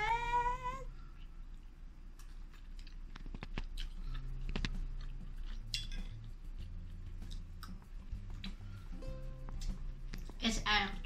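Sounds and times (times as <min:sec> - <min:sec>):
chewing: 0:01.0 - 0:08.7
metal fork clicking on plate: 0:05.8 - 0:06.1.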